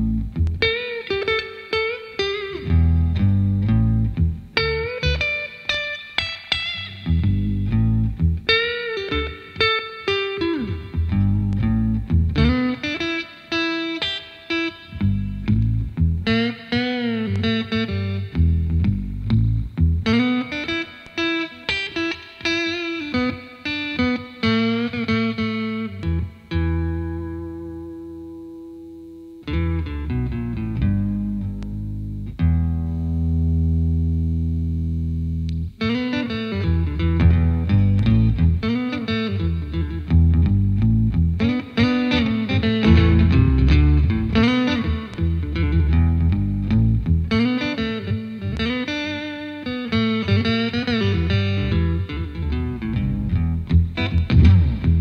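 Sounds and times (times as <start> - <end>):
electric guitar with octave bass: 0.0 - 55.0.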